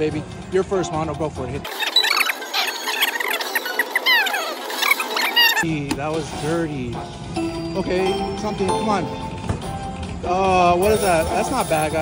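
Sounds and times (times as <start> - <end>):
slot machine squeaky chirps: 1.7 - 5.6.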